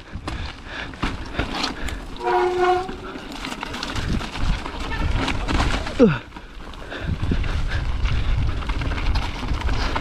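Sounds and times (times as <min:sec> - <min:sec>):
bike tyres rumbling on rocky trail: 0:00.0 - 0:10.0
bike clattering and knocking: 0:00.2 - 0:06.6
steady honking tone: 0:02.2 - 0:03.2.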